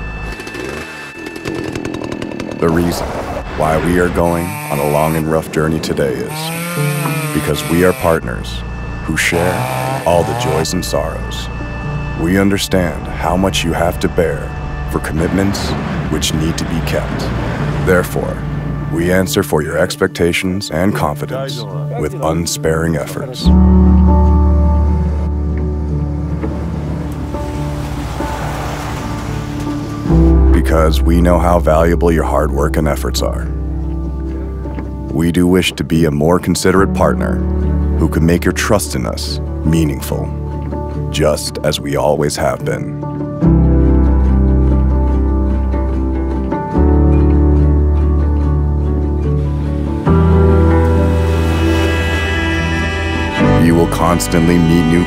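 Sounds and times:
chainsaw running: 0:00.2 - 0:02.9, 0:03.6 - 0:10.8, 0:49.8 - 0:55.0
soft music of held notes: 0:02.6 - 0:55.0
low rumble: 0:10.6 - 0:19.6.

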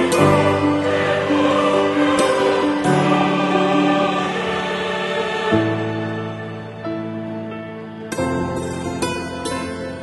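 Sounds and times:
choir-like music chords: 0:00.0 - 0:10.0.

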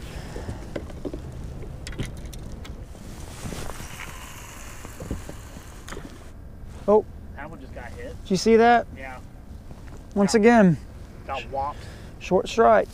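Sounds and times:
open-air background noise: 0:00.0 - 0:12.9.

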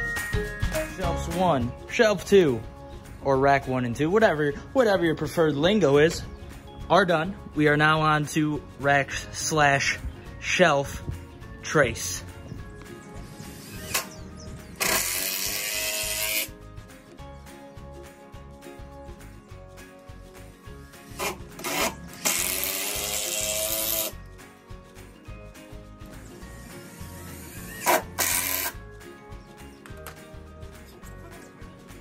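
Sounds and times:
background music: 0:00.0 - 0:32.0
power drill driving screws into wood: 0:14.8 - 0:16.5, 0:21.2 - 0:24.2, 0:26.9 - 0:28.8.

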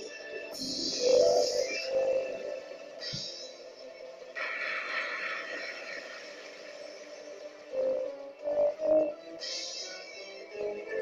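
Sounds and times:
slot machine music: 0:00.0 - 0:11.0.

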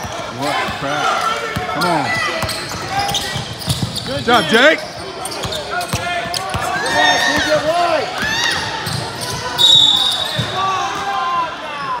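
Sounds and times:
sneakers squeaking: 0:00.0 - 0:11.0
high whistle blast: 0:09.6 - 0:10.4.

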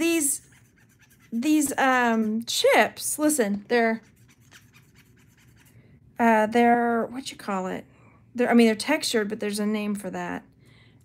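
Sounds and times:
fingernail scratching clay chip: 0:00.4 - 0:02.4, 0:04.0 - 0:05.7.

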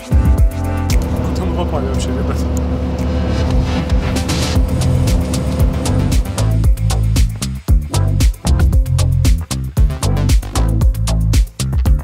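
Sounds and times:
engine and road hum: 0:00.9 - 0:06.8.

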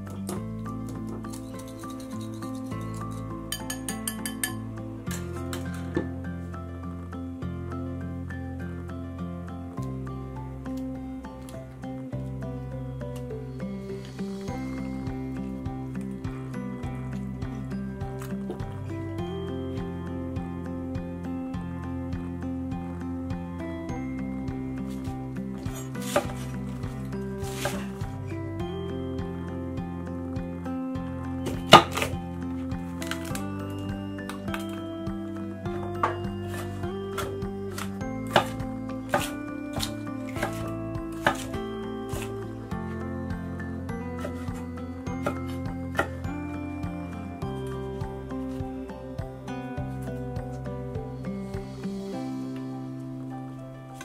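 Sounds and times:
background music: 0:00.0 - 0:54.0
knife chopping on wooden board: 0:25.7 - 0:26.5, 0:36.0 - 0:42.3.

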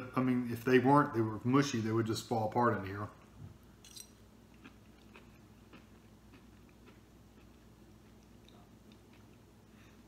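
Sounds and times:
faint chewing: 0:04.5 - 0:10.0.

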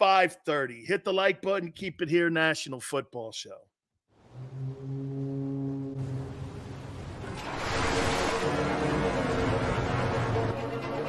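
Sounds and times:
deep horn-like tone: 0:04.2 - 0:10.8.

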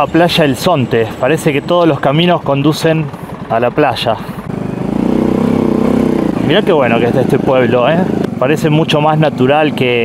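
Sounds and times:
small motorcycle engine running: 0:00.0 - 0:10.0.

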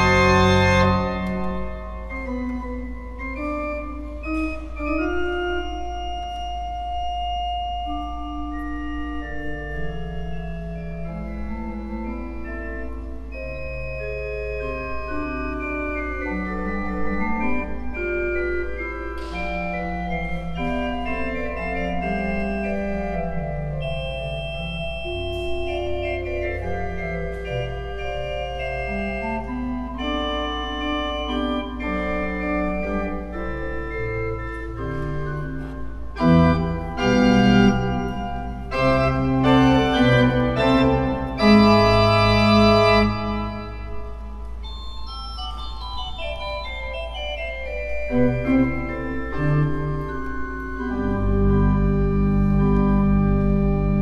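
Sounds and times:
low organ pedal note: 0:00.0 - 0:54.0
organ playing sustained chords: 0:00.0 - 0:54.0.

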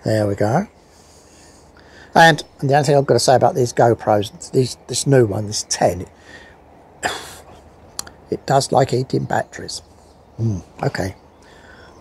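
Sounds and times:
man coughing: 0:07.0 - 0:07.5.

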